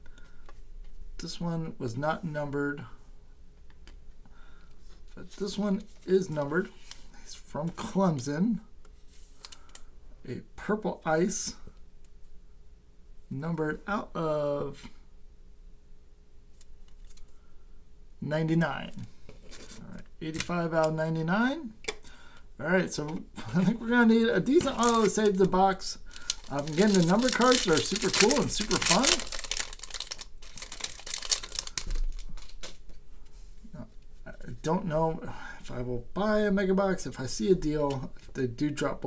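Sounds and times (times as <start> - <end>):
foil wrapper crinkling: 24.4 - 32.8
trading card clicks and rustles: 24.4 - 33.0.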